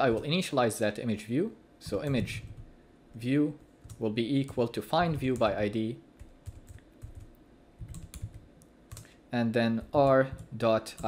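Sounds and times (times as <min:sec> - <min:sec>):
typing on computer keyboard: 0:03.8 - 0:05.6, 0:06.2 - 0:09.1.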